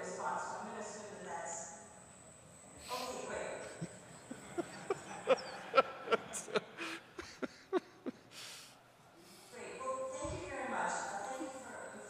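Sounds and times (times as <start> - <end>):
man laughing: 3.8 - 8.3.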